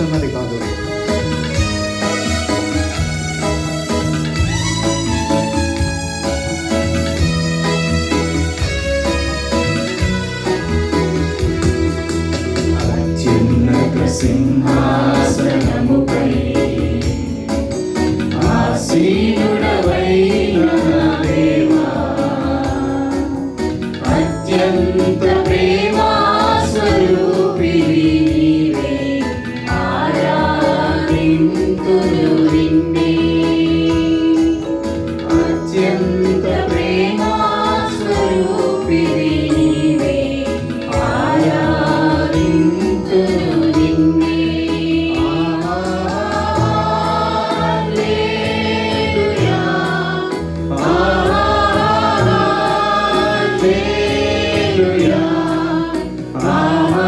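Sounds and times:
accompaniment with steady beat: 0.0 - 57.0
group singing worship song: 11.2 - 57.0.

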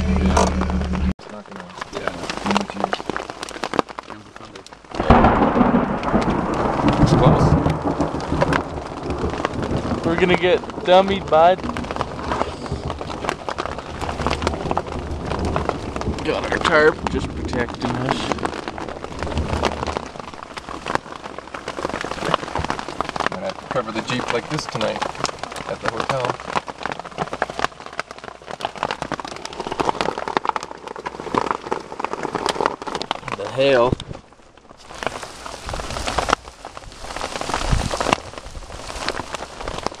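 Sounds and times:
heavy rain drumming on tarp: 0.0 - 40.0.

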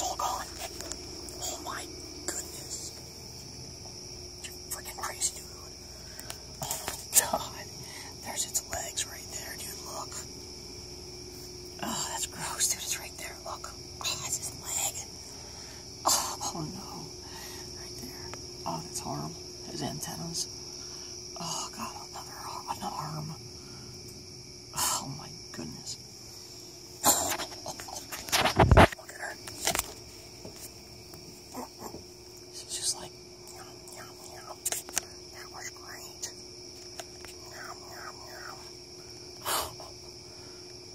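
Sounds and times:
soft whispering: 0.0 - 3.0, 4.4 - 10.3, 11.8 - 20.5, 21.4 - 23.4, 24.7 - 26.0, 27.0 - 29.9, 32.5 - 36.4, 37.3 - 38.8
crickets chirring: 0.0 - 40.9.

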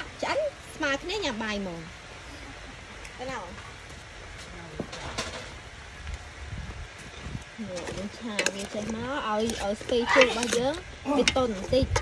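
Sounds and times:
steady low rumble: 0.0 - 12.0
ladle scraping pot: 7.7 - 12.0.

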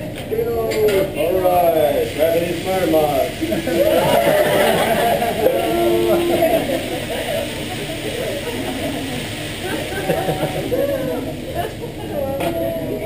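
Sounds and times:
people chattering: 0.0 - 13.0
food sizzling on griddle: 0.6 - 13.0.

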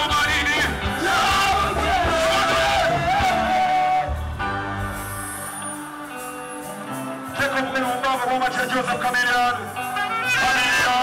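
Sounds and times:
man singing a long note: 0.0 - 4.2
live band music through pa: 0.0 - 11.0.

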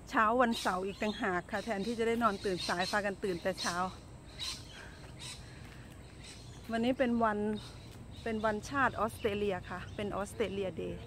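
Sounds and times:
faint bird chirps: 0.4 - 11.0.

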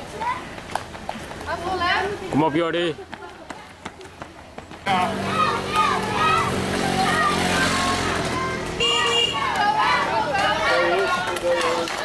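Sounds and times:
runners' footsteps on road: 0.0 - 12.0
motor scooter engine humming: 4.9 - 10.6.

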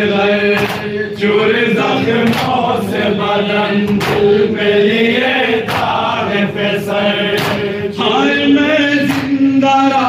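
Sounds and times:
men chanting through a microphone: 0.0 - 10.0
hand slaps on chest: 0.6 - 0.9, 7.4 - 7.6.

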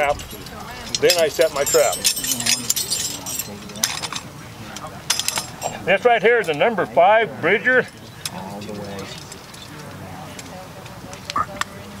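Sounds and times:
steel trap chain clinking: 0.0 - 6.9, 7.8 - 10.5.

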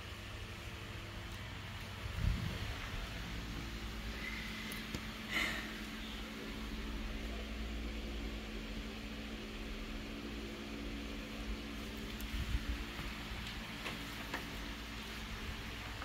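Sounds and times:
photocopier fan hum: 0.0 - 16.0.

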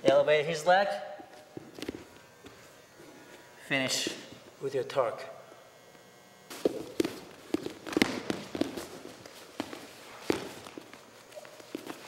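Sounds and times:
bodies knocking on a mat: 6.6 - 10.9.

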